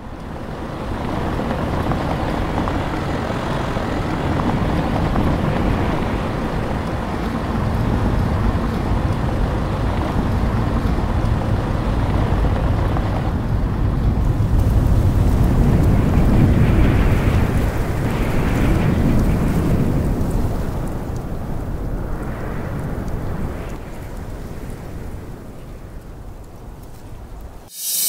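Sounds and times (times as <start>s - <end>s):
vehicle rumble on rough road: 0.0s - 21.6s
wind on microphone: 0.0s - 28.0s.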